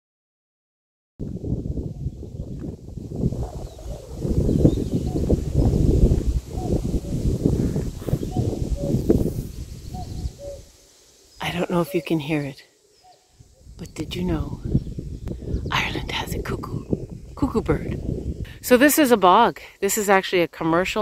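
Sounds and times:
wind buffeting microphone: 1.2s - 10.8s, 13.3s - 19.5s
cuckoo calling: 6.5s - 7.4s, 8.0s - 14.9s.

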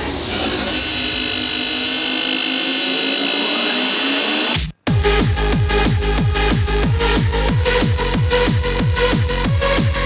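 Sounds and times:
noisy synth wash: 0.0s - 10.0s.

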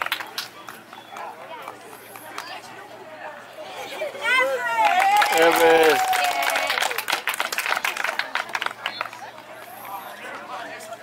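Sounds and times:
distant indistinct chatter: 0.0s - 11.0s.

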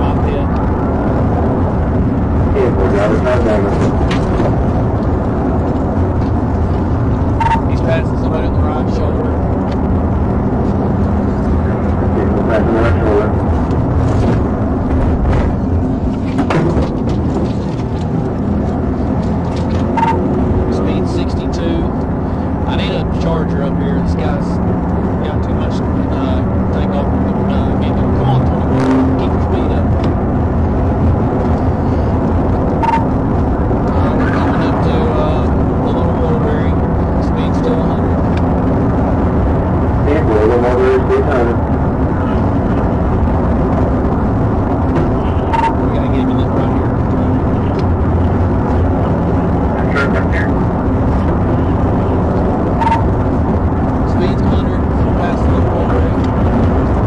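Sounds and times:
low engine drone: 0.0s - 57.0s
road noise: 0.0s - 57.0s
wind noise: 0.0s - 57.0s.

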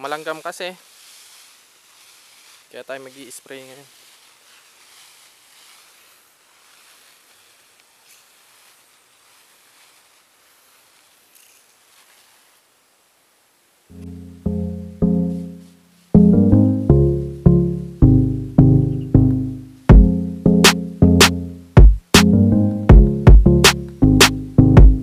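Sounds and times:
garden sprayer hissing: 0.0s - 13.0s
background music with struck notes: 13.9s - 25.0s.

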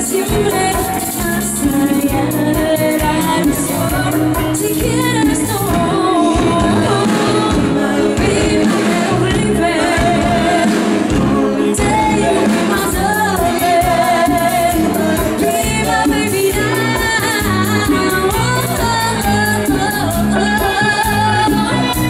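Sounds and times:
live band playing: 0.0s - 22.0s
woman singing: 0.0s - 22.0s.

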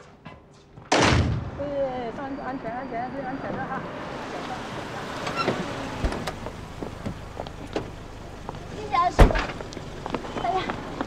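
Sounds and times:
street traffic noise: 0.0s - 11.0s
dull thump: 9.2s - 9.6s.

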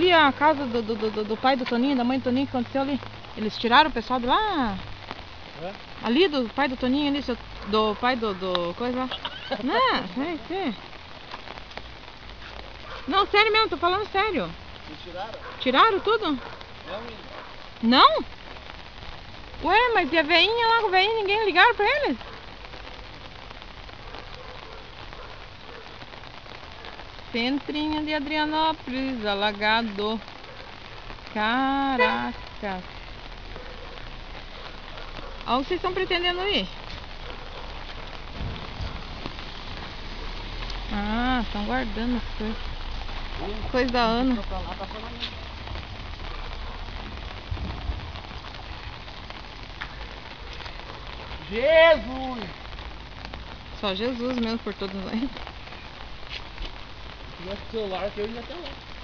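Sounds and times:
steady rain falling: 0.0s - 59.0s
low rumble: 44.5s - 49.6s.

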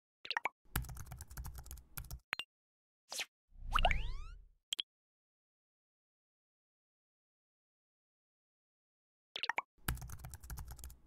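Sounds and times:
fast typing-like clicks: 0.8s - 2.2s, 9.8s - 11.0s.

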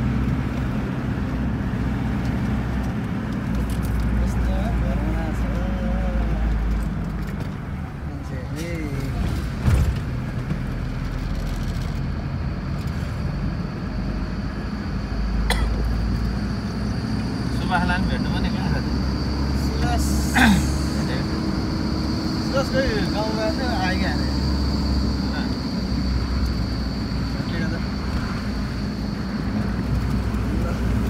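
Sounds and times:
car engine and road noise: 0.0s - 31.0s.

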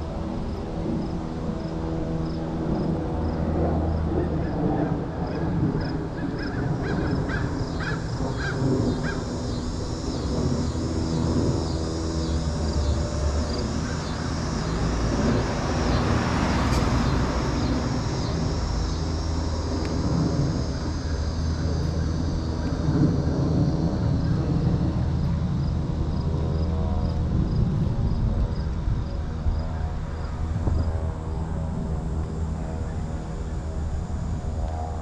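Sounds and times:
low steady street rumble: 0.0s - 35.0s
harsh cawing calls: 6.1s - 19.6s
car passing: 7.1s - 34.6s.

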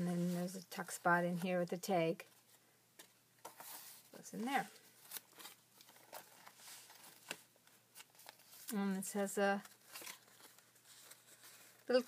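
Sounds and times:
paper pages rustling: 0.2s - 12.0s.

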